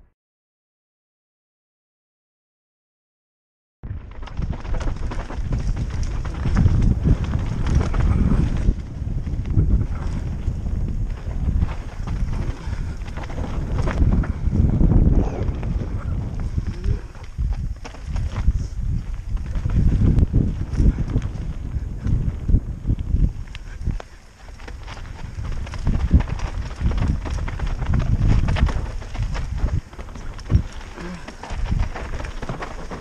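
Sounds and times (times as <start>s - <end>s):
bike tyres rolling on dirt: 3.8s - 33.0s
wind buffeting microphone: 3.8s - 33.0s
bike rattling over bumps: 3.9s - 33.0s.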